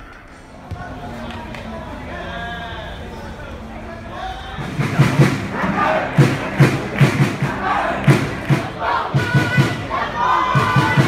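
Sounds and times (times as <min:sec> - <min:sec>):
open-air stadium background: 0:00.0 - 0:11.0.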